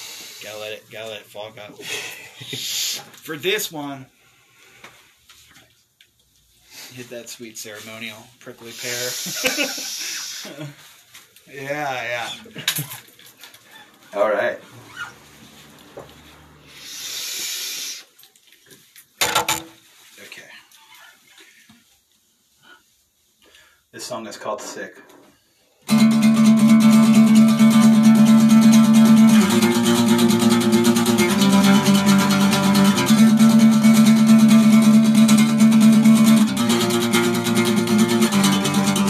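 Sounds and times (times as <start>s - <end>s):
steady hiss: 0.0s - 3.4s, 6.6s - 12.5s, 16.7s - 18.2s.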